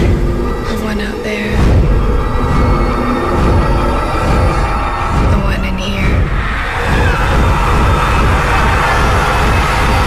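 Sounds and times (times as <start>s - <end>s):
low pulses: 0.0s - 10.0s.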